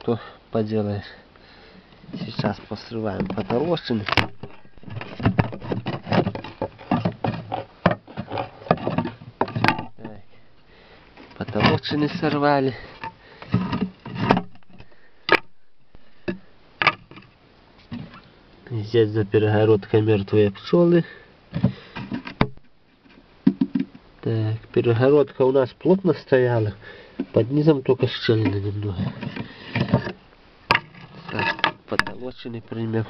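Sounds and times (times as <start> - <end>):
wood cracking and creaking: 2.1 - 10.2, 11.2 - 15.6, 27.2 - 33.0
loud sharp wood crack: 15.3 - 15.6.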